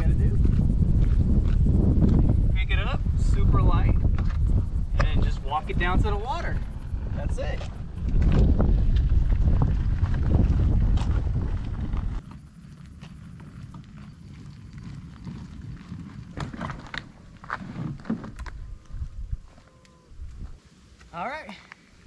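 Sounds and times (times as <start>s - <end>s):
wind on microphone: 0.0s - 12.2s, 13.5s - 20.6s
tires rolling over gravel: 0.0s - 19.2s.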